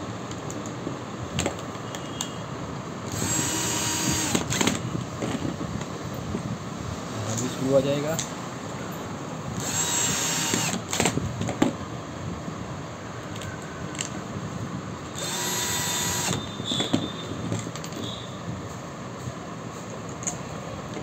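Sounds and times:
cordless drill driving screws: 0:03.1 - 0:04.8, 0:09.6 - 0:11.2, 0:15.2 - 0:16.4.

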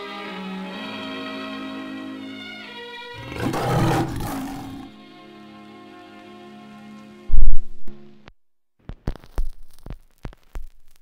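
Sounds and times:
music with long held notes: 0:00.0 - 0:03.2, 0:04.9 - 0:07.3
big cat roaring: 0:03.1 - 0:05.0.

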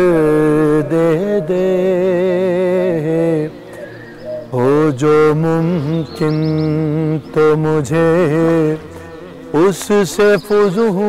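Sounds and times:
man singing: 0:00.0 - 0:03.8, 0:04.4 - 0:11.0.

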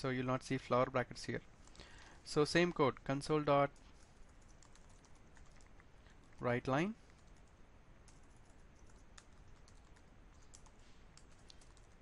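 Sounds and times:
faint keyboard typing: 0:01.6 - 0:12.0.

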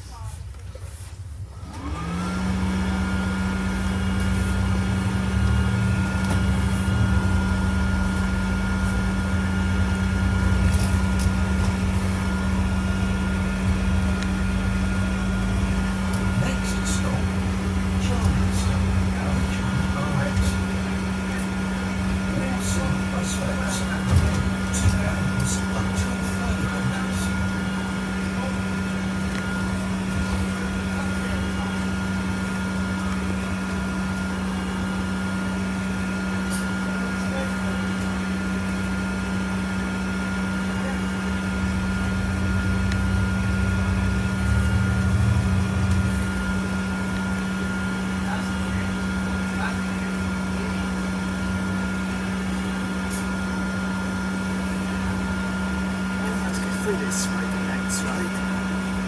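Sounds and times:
bus engine drone: 0:00.0 - 0:59.0.

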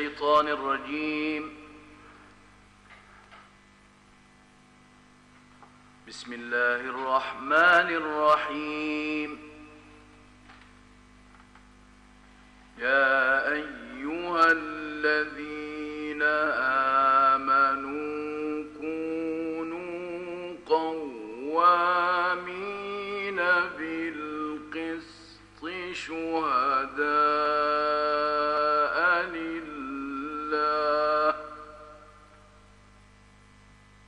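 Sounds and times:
man chanting melodically: 0:00.0 - 0:01.9, 0:06.1 - 0:10.0, 0:12.8 - 0:32.1
mains hum and hiss: 0:00.0 - 0:34.0.

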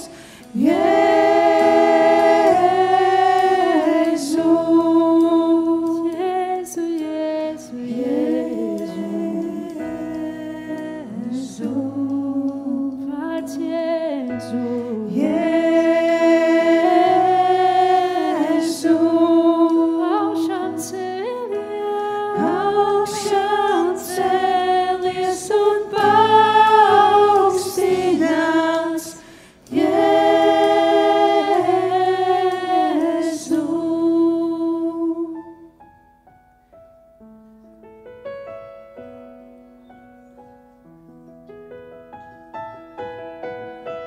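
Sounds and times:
singers holding long note: 0:00.0 - 0:13.2, 0:14.4 - 0:35.4
worship band playing slow song: 0:00.0 - 0:36.0.

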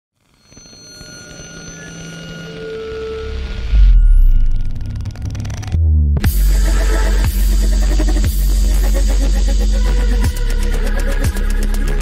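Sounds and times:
deep bass hit: 0:05.8 - 0:08.8.

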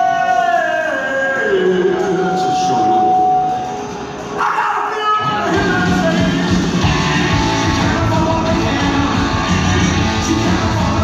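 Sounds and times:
punk rock band playing: 0:05.2 - 0:11.0.

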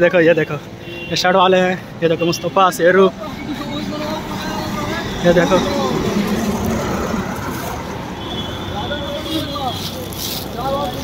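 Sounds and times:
street traffic: 0:00.0 - 0:11.0.

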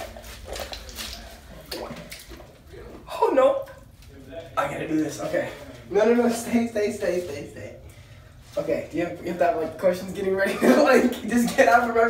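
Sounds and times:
water sloshing in bathtub: 0:00.0 - 0:04.0.

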